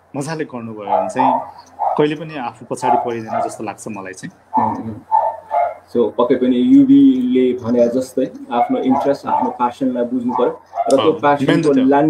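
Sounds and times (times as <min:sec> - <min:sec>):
man speaking over video call: 0:00.0 - 0:05.1, 0:05.9 - 0:12.0.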